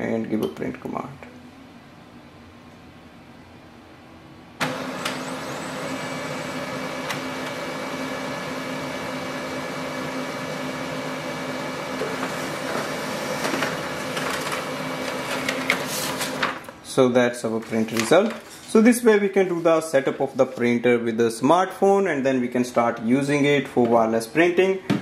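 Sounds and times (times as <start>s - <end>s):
printer clicks: 4.6s - 5.4s, 7.0s - 7.6s
printer motor hum with whine: 4.6s - 16.7s
paper feeding clicks: 11.9s - 16.8s, 17.5s - 18.8s.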